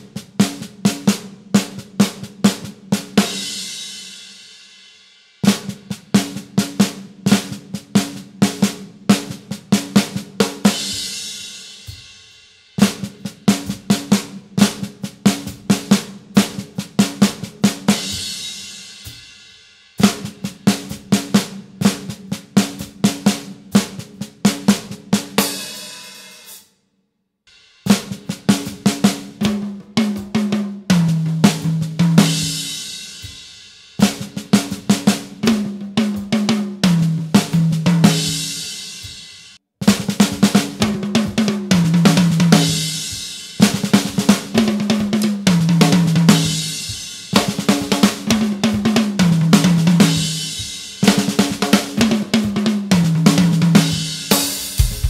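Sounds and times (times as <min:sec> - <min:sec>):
snare drum fill: 0:39.8 - 0:55.0
tom drum fill: 0:39.8 - 0:55.0.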